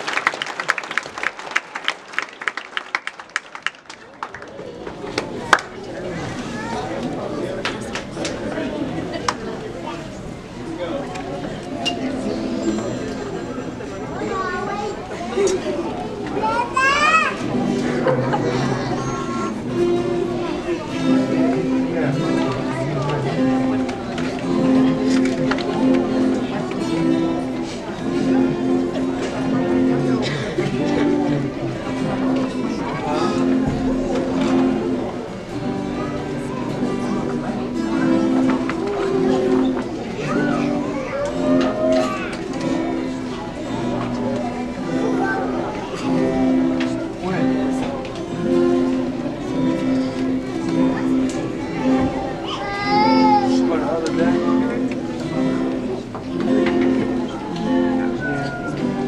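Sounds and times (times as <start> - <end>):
children chattering: 0.0 - 59.0
guitar ensemble playing: 5.9 - 59.0
child's high-pitched call: 52.4 - 53.7.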